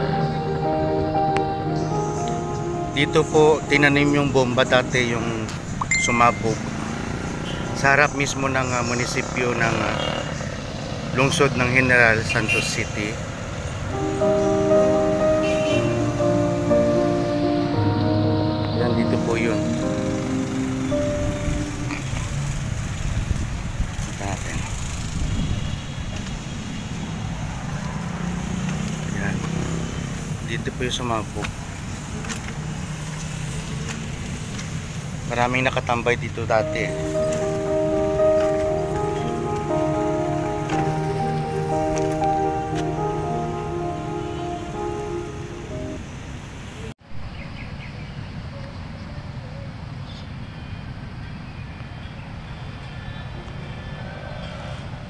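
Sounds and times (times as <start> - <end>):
engine hum: 0.0 - 11.6, 13.5 - 35.2, 36.6 - 46.6
road traffic rumble: 0.0 - 55.0.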